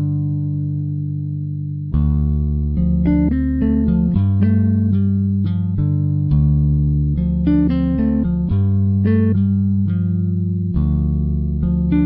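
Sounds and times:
low bass notes: 0.0 - 12.0
plucked guitar notes: 0.0 - 12.0.

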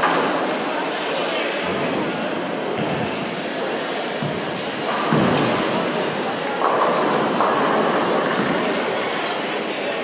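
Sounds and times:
bowling balls rolling: 4.2 - 8.8.

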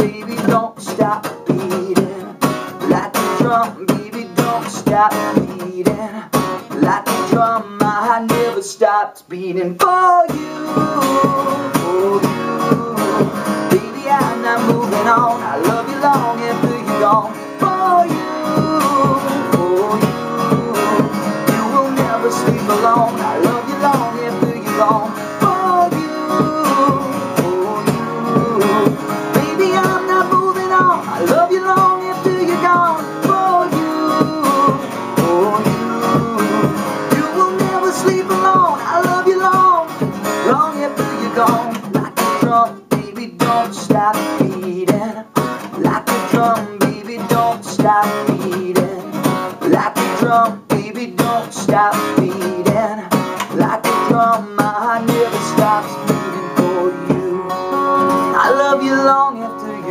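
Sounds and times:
acoustic guitar strumming: 0.0 - 59.9
man singing: 0.0 - 59.9.

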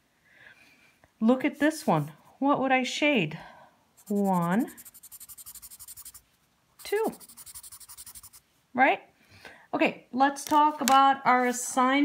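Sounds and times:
colored pencil scribbling on paper: 4.0 - 6.2, 6.8 - 8.4.

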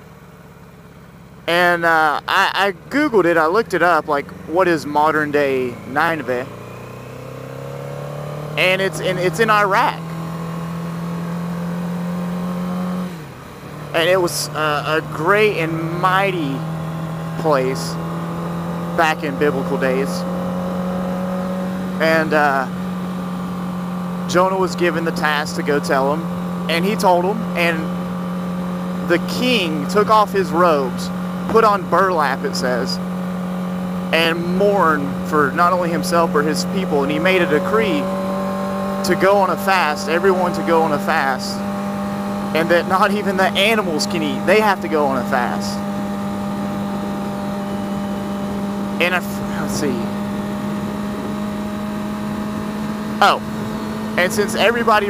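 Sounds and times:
motorcycle engine cruising: 0.0 - 55.0
wind rushing over microphone: 46.3 - 54.2.

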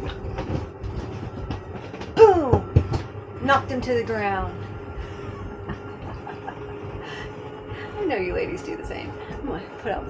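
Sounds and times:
electric motor humming: 0.0 - 10.0.

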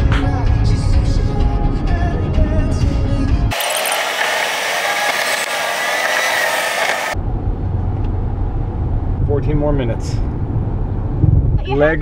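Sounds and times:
road rumble in car cabin: 6.8 - 12.0.

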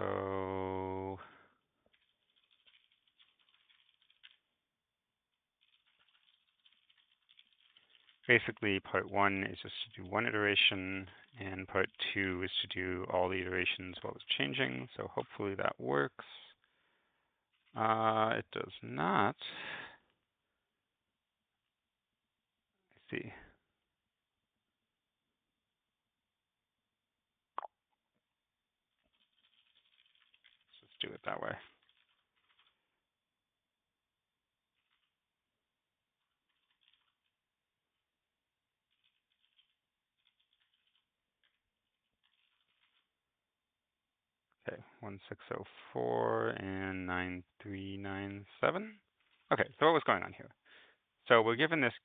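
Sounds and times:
keyboard typing: 1.9 - 4.5, 5.6 - 8.3, 36.5 - 37.2, 38.9 - 41.6.

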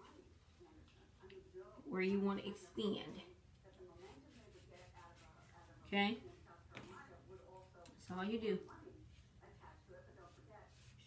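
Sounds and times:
chalk scratching on fabric: 4.0 - 5.8, 10.2 - 11.0.

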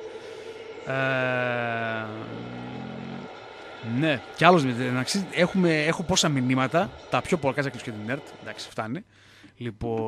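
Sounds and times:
man's drawn-out hesitation sound: 0.9 - 9.0.

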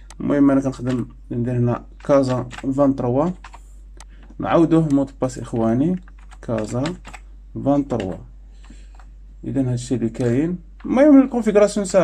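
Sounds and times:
keyboard typing clicks: 0.0 - 1.2, 2.0 - 9.1, 10.2 - 11.0
man talking: 0.1 - 3.5, 4.4 - 8.3, 9.4 - 12.0.

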